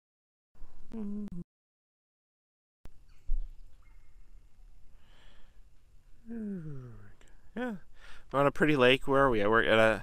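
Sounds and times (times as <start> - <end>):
faint outdoor ambience: 2.9 - 10.0.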